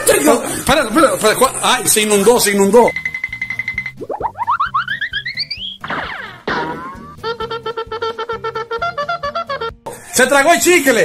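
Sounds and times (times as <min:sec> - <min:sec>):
comic rising swoops: 0:04.0 - 0:07.2.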